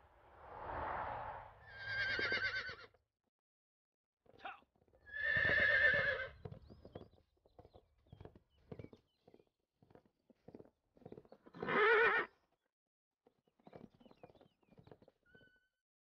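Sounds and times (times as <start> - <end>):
horse whinnying: 1.7 - 2.9, 5.1 - 6.4, 11.6 - 12.3
hoofbeats: 4.3 - 12.4, 13.4 - 15.7.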